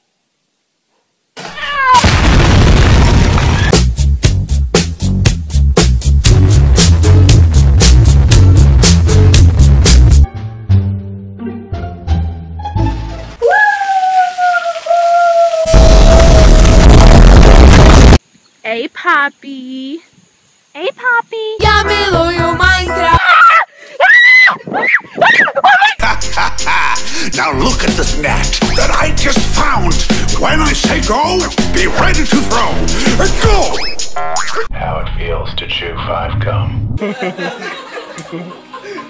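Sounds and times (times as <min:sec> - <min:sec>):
loud explosion-like blast: 0:02.0 - 0:03.7, 0:15.7 - 0:18.2
music with a beat: 0:03.8 - 0:10.3, 0:27.6 - 0:34.5
rushing water hiss: 0:12.9 - 0:15.8
loud distorted water blast: 0:15.7 - 0:18.2, 0:28.6 - 0:34.6.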